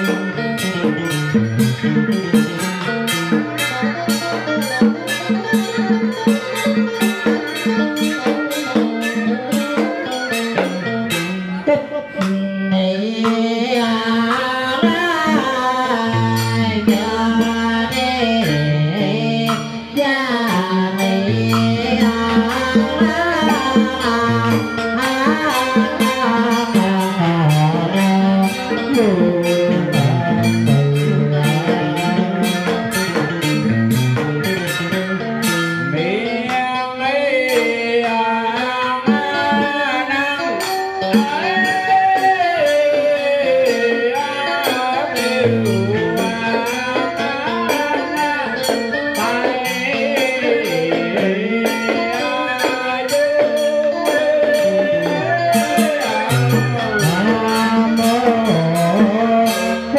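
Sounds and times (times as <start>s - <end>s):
drum strikes: 0.0s - 36.8s, 37.5s - 59.9s
electric guitar: 0.0s - 59.9s
sharp drum strokes: 13.2s - 35.8s.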